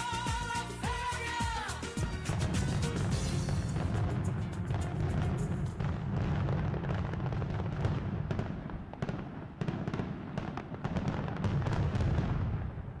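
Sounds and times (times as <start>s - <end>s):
fireworks crackling and popping: 0.0s - 13.0s.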